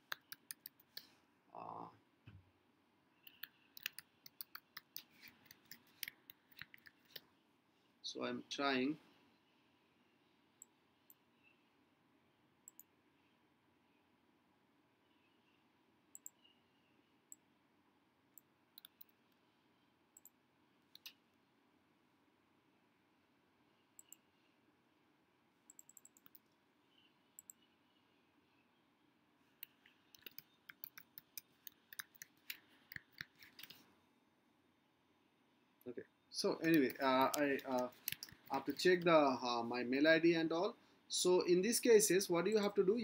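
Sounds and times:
keyboard typing: 0.0s - 1.1s, 3.2s - 7.2s, 18.4s - 19.2s, 25.7s - 26.6s, 29.6s - 33.8s, 36.6s - 39.2s
sharp clicks: 3.2s - 7.2s, 29.6s - 33.8s, 36.6s - 39.2s.

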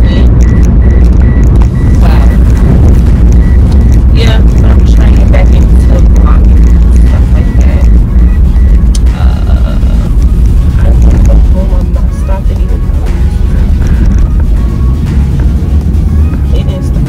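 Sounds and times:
woman talking: 0.0s - 0.4s, 1.9s - 2.4s, 4.1s - 8.0s, 9.0s - 13.2s, 16.4s - 17.0s
car cabin rumble: 0.0s - 17.0s.

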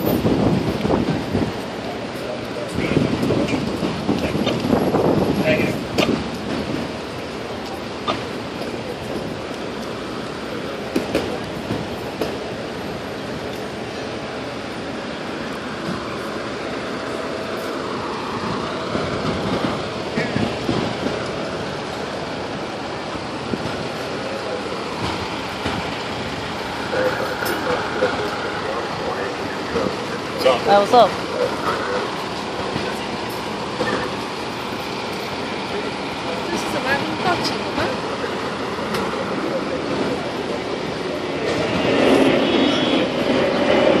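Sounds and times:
diesel engines idling: 0.0s - 42.4s
heavy city street rumble: 0.0s - 44.0s.

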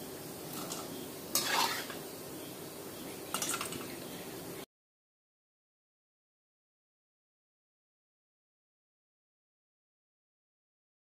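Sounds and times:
peanuts sizzling in hot oil: 0.0s - 4.6s
spatula scraping a wok: 0.5s - 2.1s.

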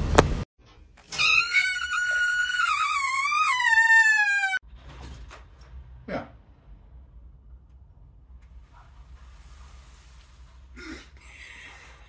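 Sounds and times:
cat yowling: 1.2s - 4.6s.

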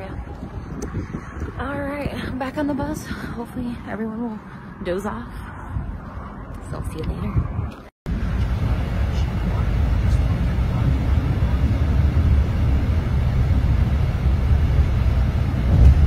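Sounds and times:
bus engine and tyres rumbling: 0.0s - 16.0s.

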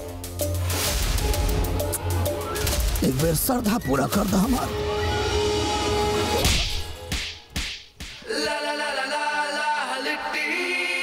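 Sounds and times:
slap sound effect: 6.4s - 8.3s.

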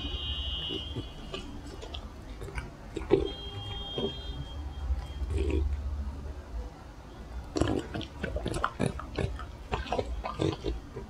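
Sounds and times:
dog chewing wetly: 0.6s - 4.2s, 7.5s - 11.0s.

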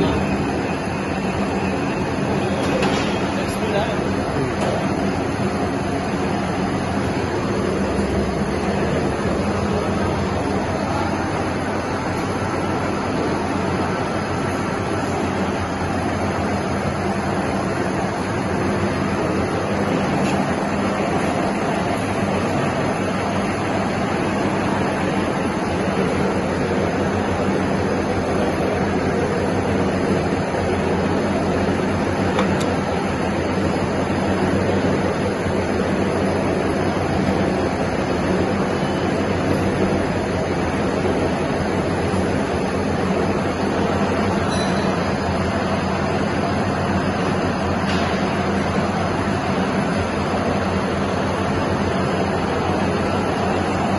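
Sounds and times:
lathe running: 0.0s - 53.9s.

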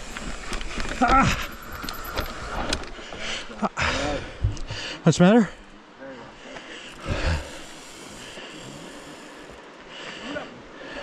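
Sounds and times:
bike clicks and rattles: 0.0s - 3.3s
bike tyre noise on dirt: 0.0s - 4.0s, 6.9s - 9.7s.

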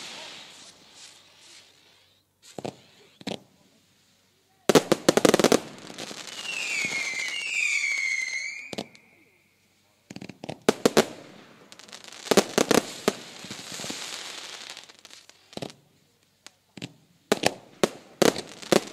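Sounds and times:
firework bangs: 0.0s - 3.7s, 4.7s - 15.8s, 16.7s - 18.9s
firework whistle falling in pitch: 6.4s - 9.6s.

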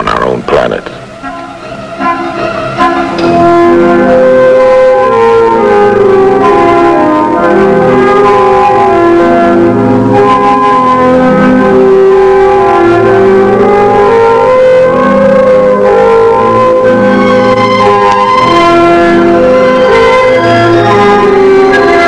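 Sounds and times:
bell-like sustained chords: 1.1s - 22.0s.

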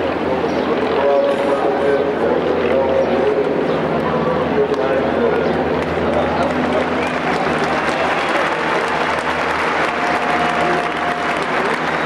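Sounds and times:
man speaking over public address: 0.0s - 12.0s.

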